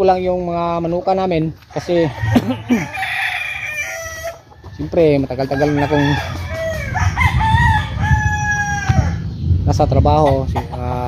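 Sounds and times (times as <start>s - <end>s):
rooster crowing: 1.7s - 9.2s.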